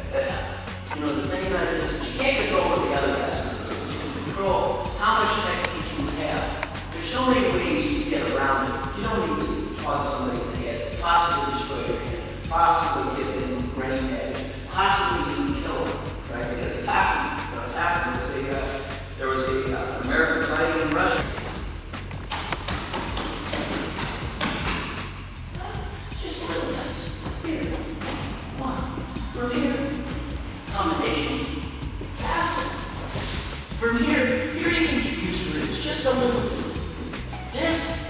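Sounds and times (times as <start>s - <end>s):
person speaking: 0.0s - 24.0s, 25.6s - 38.0s.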